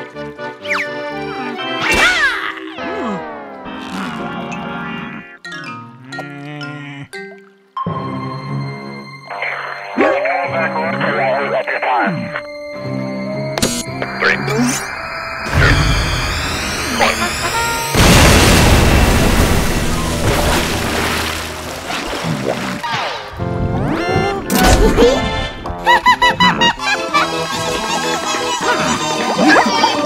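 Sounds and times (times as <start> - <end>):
cartoon music: 0.6 - 18.3, 23.4 - 30.0
cartoon vocal noises: 6.0 - 7.2
rising whistle: 13.9 - 18.0
loud explosion sound effect: 15.4 - 21.5.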